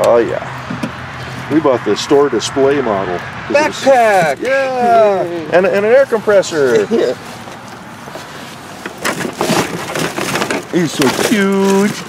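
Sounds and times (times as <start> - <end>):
cardboard box rustling and crackling: 6.7 - 12.0.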